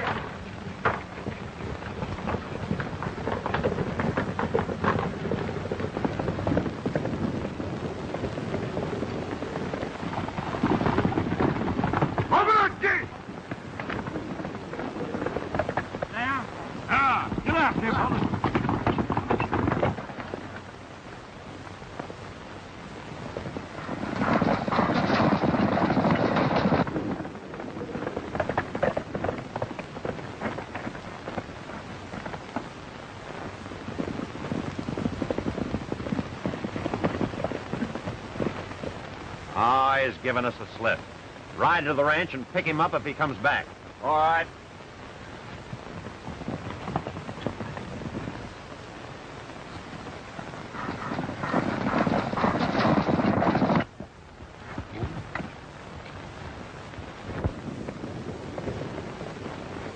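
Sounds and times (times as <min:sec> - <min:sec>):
horses galloping: 0:00.0 - 0:59.9.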